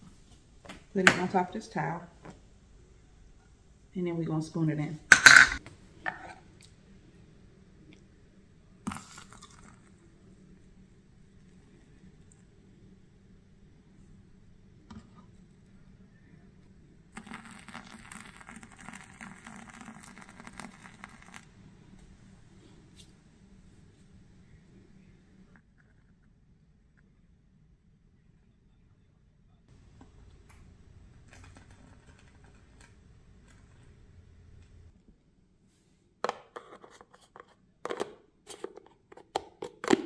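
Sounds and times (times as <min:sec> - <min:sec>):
kitchen utensils clattering: 0:05.1 - 0:06.4
water pouring onto coffee grounds: 0:08.9 - 0:10.0, 0:17.2 - 0:21.5.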